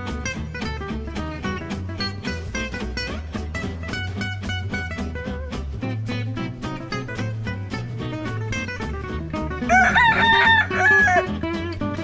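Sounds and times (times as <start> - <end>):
background guitar music: 0.0 - 12.0
rooster crowing: 9.6 - 11.4.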